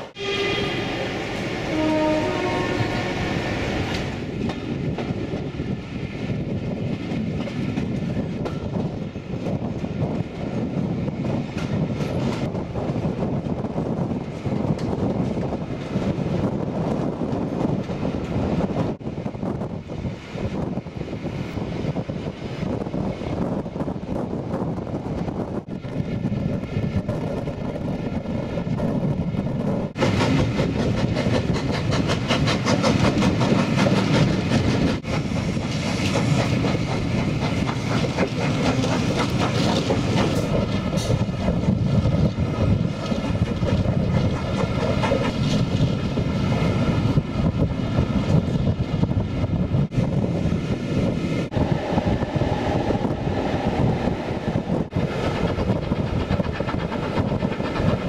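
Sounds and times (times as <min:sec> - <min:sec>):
steam train rumbling: 0:00.0 - 0:58.0.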